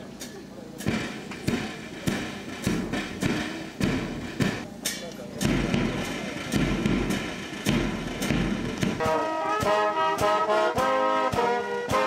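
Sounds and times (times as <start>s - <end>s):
bass drum beating steady pulse: 5.4s - 12.0s
brass band playing: 6.8s - 12.0s.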